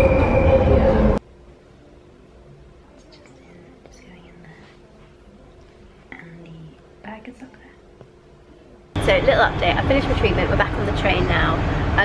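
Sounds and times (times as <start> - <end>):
underground train rumble: 0.0 - 1.2, 9.0 - 12.0
high whine: 0.0 - 2.6.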